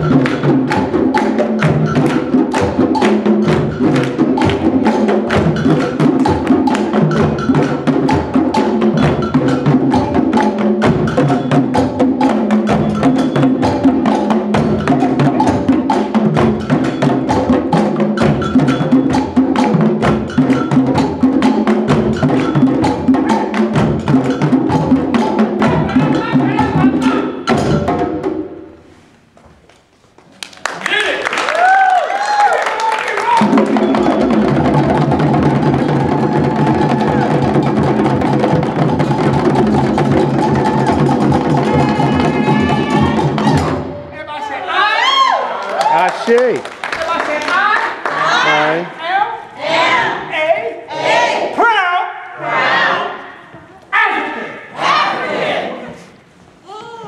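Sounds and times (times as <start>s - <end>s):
hand drums playing fast rhythm: 0.0s - 28.5s, 33.3s - 44.1s
hand clapping: 0.2s - 3.2s, 30.2s - 33.7s, 45.7s - 48.2s.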